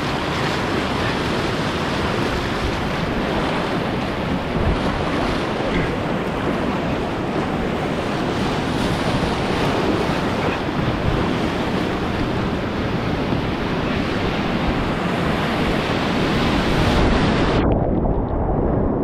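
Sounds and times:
whitewater rapids rushing: 0.0s - 17.6s
wind on microphone: 0.0s - 19.0s.

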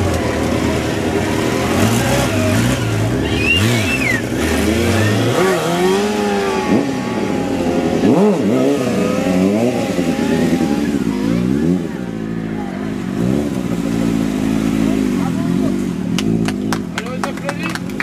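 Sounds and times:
motorcycle engines revving: 0.0s - 18.0s.

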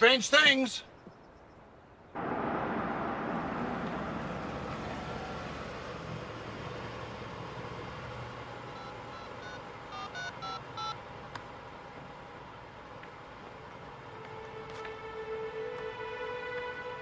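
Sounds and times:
car driving off: 2.1s - 10.0s
phone keypad beeps: 8.7s - 11.0s.

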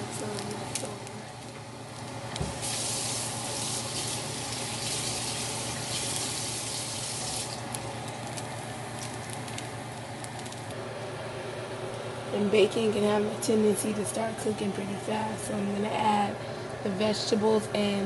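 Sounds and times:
bacon sizzling and popping: 0.4s - 10.7s.

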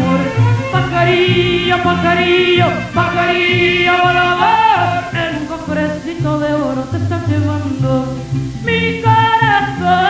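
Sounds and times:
mariachi band playing: 0.0s - 10.0s
woman singing: 0.0s - 10.0s.

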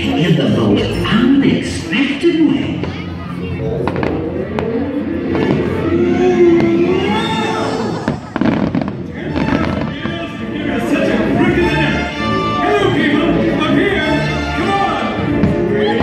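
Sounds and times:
orchestral music with singing: 0.0s - 16.0s
fireworks bangs: 3.8s - 10.4s.

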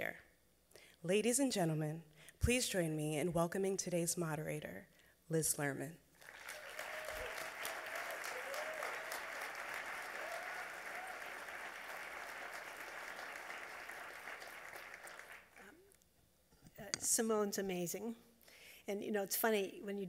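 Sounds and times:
audience applauding: 6.2s - 15.9s.

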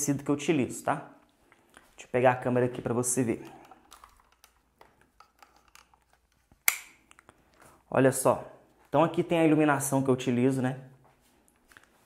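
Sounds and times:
camera handling noise: 3.4s - 7.3s.

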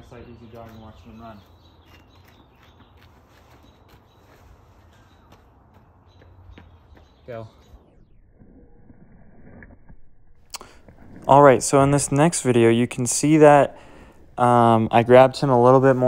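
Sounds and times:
quiet outdoor ambience: 0.0s - 16.0s
footsteps jogging on brick: 0.6s - 7.2s.

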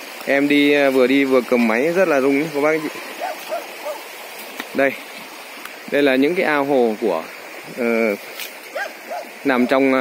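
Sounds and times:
stream running over rocks: 0.0s - 10.0s
distant dog barking: 2.8s - 4.1s, 8.7s - 9.9s.

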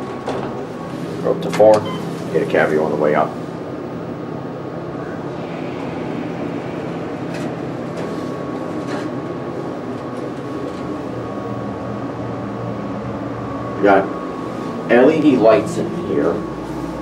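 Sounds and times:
faint elevator whine: 0.0s - 17.0s
mechanical hum: 0.0s - 17.0s.

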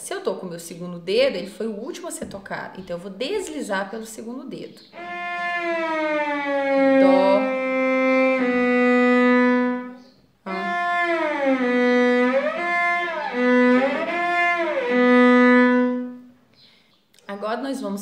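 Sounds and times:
bowed cello with glissandos: 4.9s - 16.3s.

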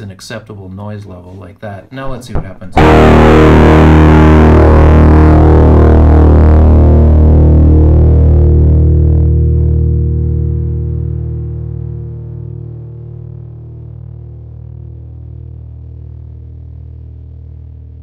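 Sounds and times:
fuzz electric guitar chord: 2.8s - 18.0s.

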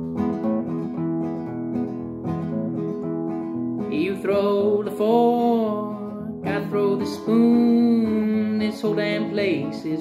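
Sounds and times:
classical guitar strummed: 0.0s - 10.0s
person singing: 3.8s - 10.0s.

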